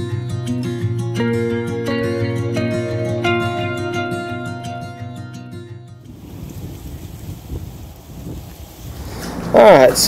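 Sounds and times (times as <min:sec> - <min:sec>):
plucked acoustic guitar music: 0:00.0 - 0:06.2
water noise: 0:06.0 - 0:10.0
wind rumble on microphone: 0:06.0 - 0:10.0.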